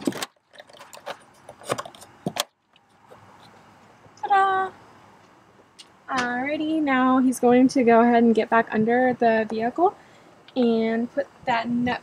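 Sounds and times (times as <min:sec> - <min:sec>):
faint steady background: 0:00.0 - 0:12.0.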